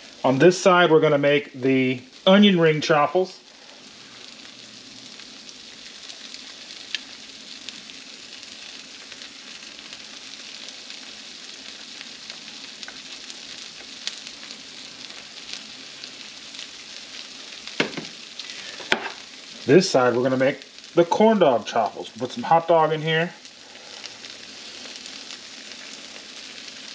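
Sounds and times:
cheese sizzling and crackling: 0.0 - 26.9.

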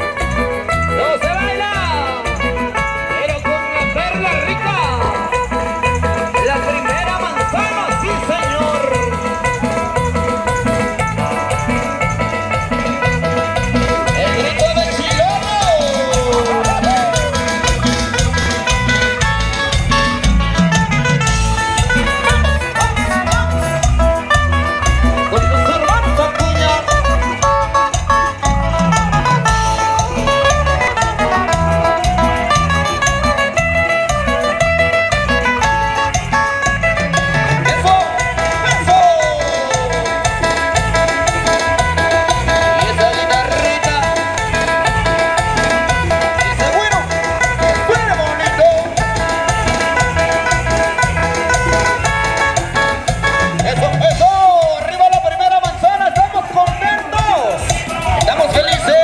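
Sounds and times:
live band playing latin dance music: 0.0 - 59.0.

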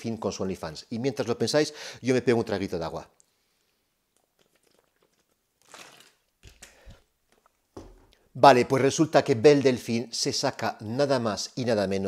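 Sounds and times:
plastic bottle crinkling: 4.1 - 8.3.

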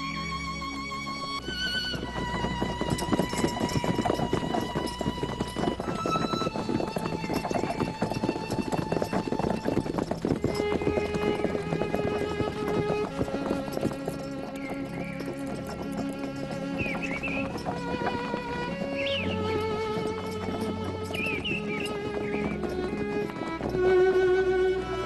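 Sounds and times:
background music with held strings: 0.0 - 25.0
horse hooves clopping on dirt: 1.2 - 25.0.

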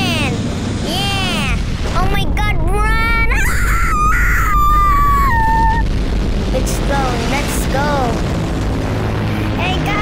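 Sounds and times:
high-pitched vocal wail: 2.9 - 5.9.

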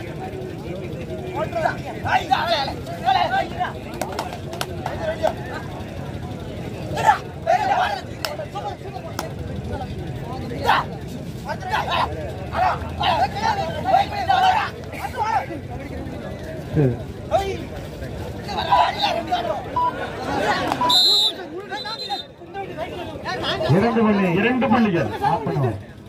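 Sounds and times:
men shouting and calling: 0.0 - 26.0.

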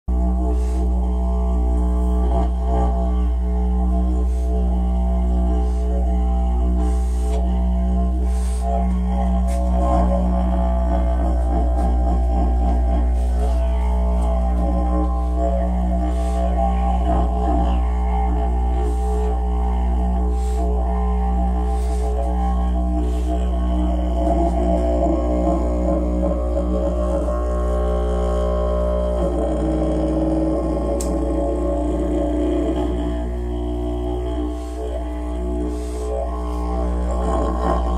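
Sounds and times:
didgeridoo drone: 0.0 - 37.9.

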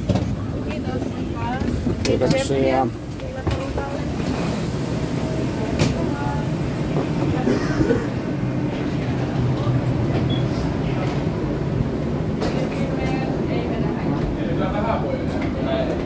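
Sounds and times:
rolling suitcase wheels: 0.0 - 7.6
faint voices: 0.0 - 16.0.

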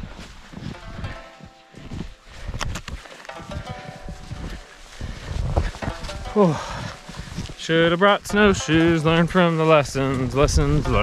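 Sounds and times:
footsteps crunching through snow: 0.0 - 11.0.

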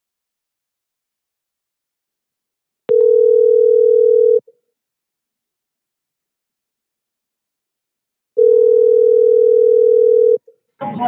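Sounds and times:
telephone ringback tone: 2.9 - 4.4, 8.4 - 10.4.

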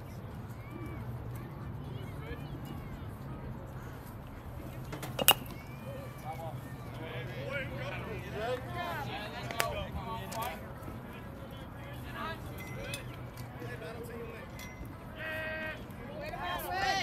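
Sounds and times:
distant voices calling out: 0.4 - 17.0.

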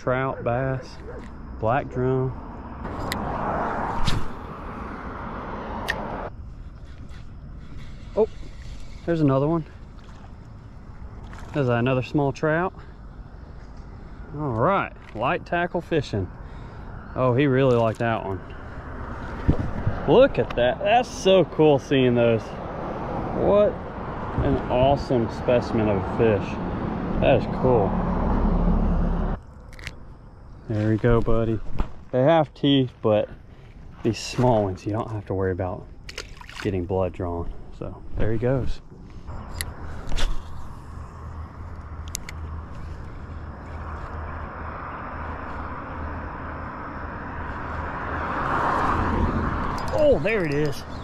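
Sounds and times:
road traffic rumble: 0.0 - 51.0
passing car rushing: 2.4 - 6.4, 21.4 - 29.4, 41.0 - 51.0.

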